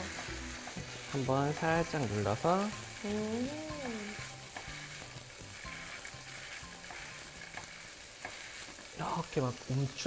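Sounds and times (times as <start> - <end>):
fish sizzling in a pan: 0.0 - 10.0.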